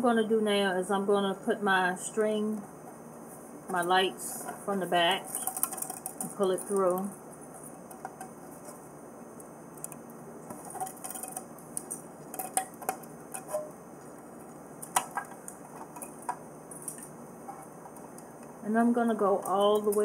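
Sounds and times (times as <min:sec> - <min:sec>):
low hiss: 0:00.0 - 0:20.0.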